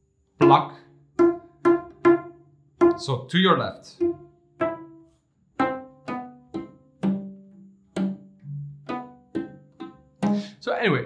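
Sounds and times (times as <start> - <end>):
cello left hand notes: 0.4 - 11.0.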